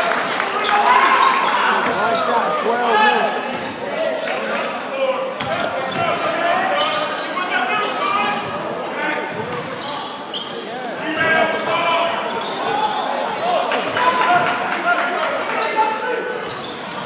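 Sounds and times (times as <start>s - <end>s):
voices of players and spectators: 0.0s - 17.0s.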